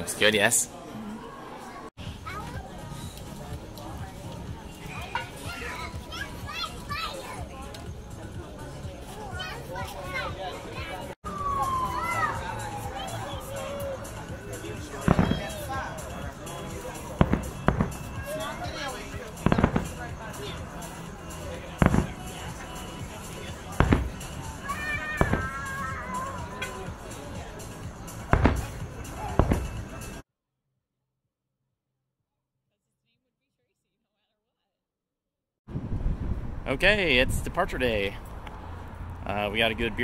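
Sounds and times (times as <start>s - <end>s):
murmur of people talking: 0.0s - 30.2s
voices: 0.0s - 30.2s
background music: 2.0s - 30.2s
children calling out: 5.1s - 7.6s, 9.2s - 14.3s, 24.5s - 27.0s
fireworks bursting: 15.0s - 15.7s, 17.1s - 18.4s, 19.3s - 20.2s, 21.7s - 22.6s, 23.6s - 25.9s, 28.2s - 30.1s.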